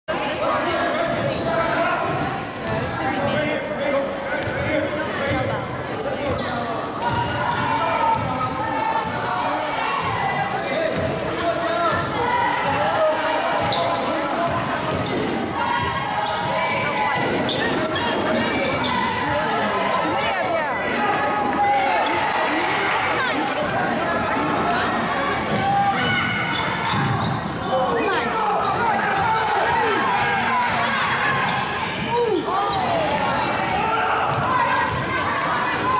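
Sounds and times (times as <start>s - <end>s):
spectators talking: 0.1s - 35.9s.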